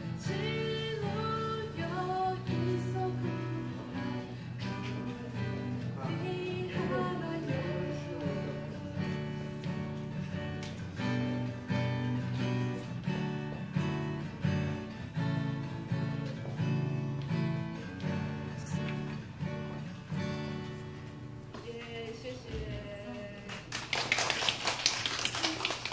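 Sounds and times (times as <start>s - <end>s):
acoustic guitar strumming: 0.0s - 21.5s.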